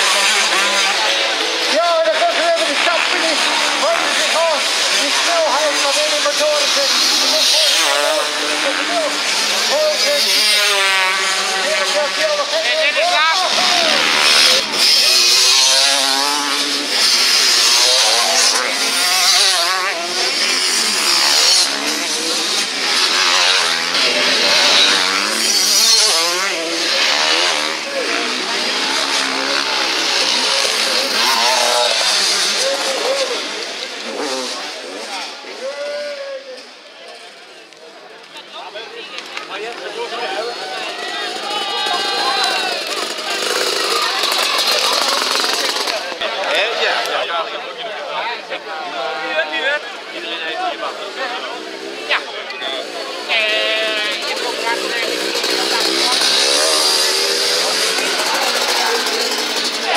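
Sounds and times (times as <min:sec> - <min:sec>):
motocross bike engines revving: 0:00.0 - 0:59.9.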